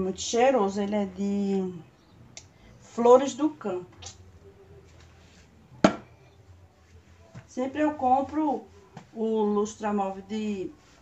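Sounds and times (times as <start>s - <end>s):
low room noise: 0.0s - 11.0s
plastic bottle knocking on shelf: 5.8s - 6.1s.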